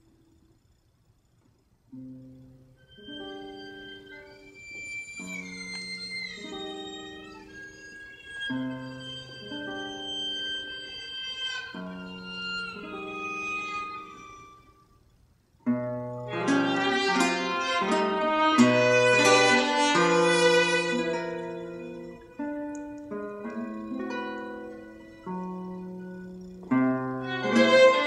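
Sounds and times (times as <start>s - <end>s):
classical guitar notes: 1.9s - 14.7s, 15.6s - 28.0s
violin with sliding notes: 2.8s - 14.8s, 16.3s - 28.0s.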